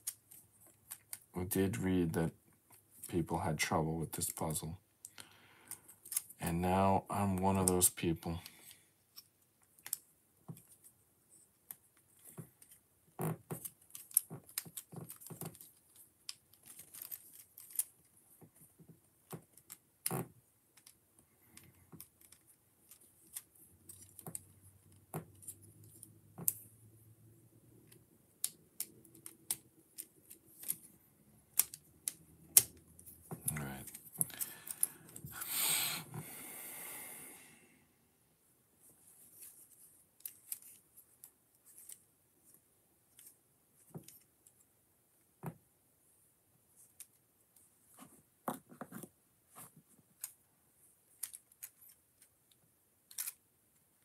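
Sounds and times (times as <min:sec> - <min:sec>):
plastic building pieces clicking: 0:00.0 - 0:01.4, 0:08.4 - 0:10.8, 0:11.7 - 0:18.1, 0:19.2 - 0:26.6, 0:27.8 - 0:30.9, 0:31.5 - 0:35.2, 0:51.1 - 0:53.6.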